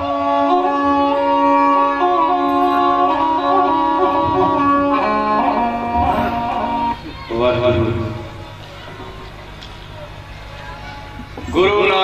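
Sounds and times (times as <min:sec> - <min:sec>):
bowed string melody: 0:00.0 - 0:08.5.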